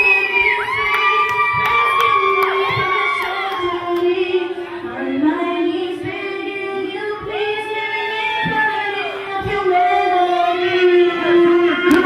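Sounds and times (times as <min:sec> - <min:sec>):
crowd shouting and cheering: 0:00.0 - 0:05.0, 0:07.5 - 0:12.0.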